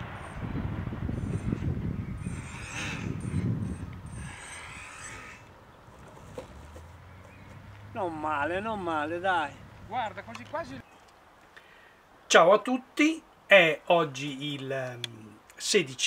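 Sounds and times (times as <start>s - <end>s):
wind rumbling on microphone: 0.0s - 10.8s.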